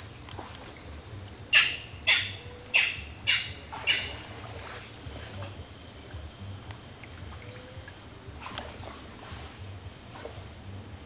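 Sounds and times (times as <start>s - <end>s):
bird giving harsh calls: 1.5s - 4.3s.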